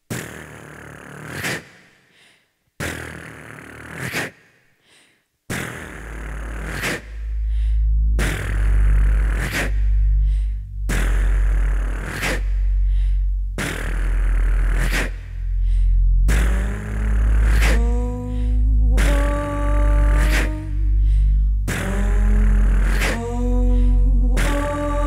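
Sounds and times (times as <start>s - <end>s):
deep pulsing sub-bass: 5.8s - 25.0s.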